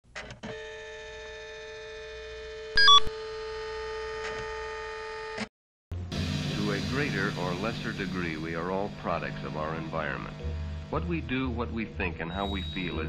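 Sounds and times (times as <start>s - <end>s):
short electronic blips: 2.8s - 3.1s
two-note beep: 2.8s - 3.1s, 12.3s - 13.0s
steady electronic tone: 11.9s - 13.0s.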